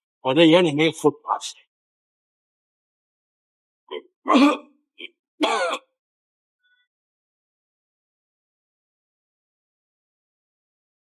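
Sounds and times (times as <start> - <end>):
man coughing: 3.9 - 4.8, 5.4 - 6.0.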